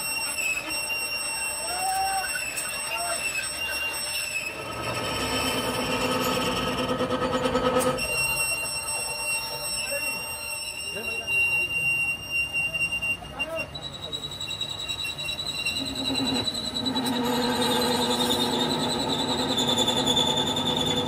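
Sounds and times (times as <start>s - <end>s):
metal lathe whining: 0.0s - 21.0s
loud humming tone: 15.2s - 21.0s.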